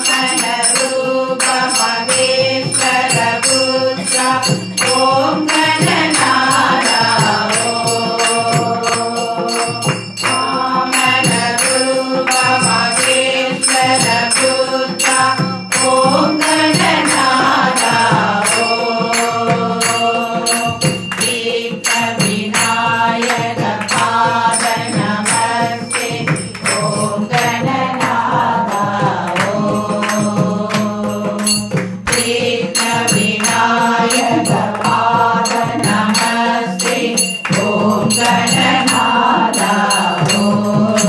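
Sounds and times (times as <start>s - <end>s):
group singing devotional song: 0.0s - 41.0s
percussion beat: 0.0s - 41.0s
hand-clapping: 0.1s - 41.0s.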